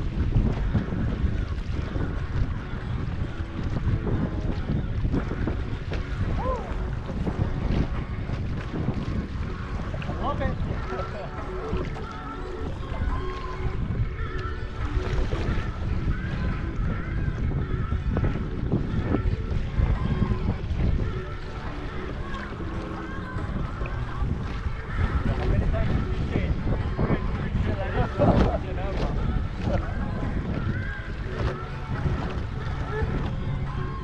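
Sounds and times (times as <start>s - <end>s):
water splashing along canoe hull: 0.0s - 34.0s
wind buffeting microphone: 0.0s - 34.0s.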